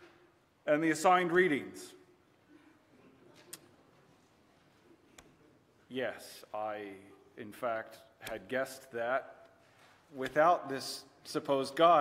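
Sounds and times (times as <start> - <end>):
man speaking: 0.6 - 2.0, 5.9 - 12.0.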